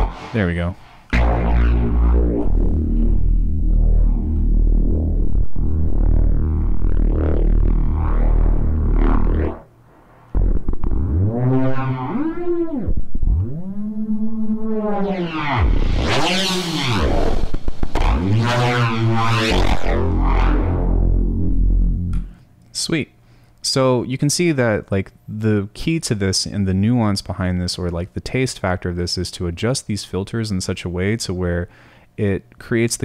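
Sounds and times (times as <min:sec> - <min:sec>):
distorted bass synth: 0:00.0 - 0:22.4.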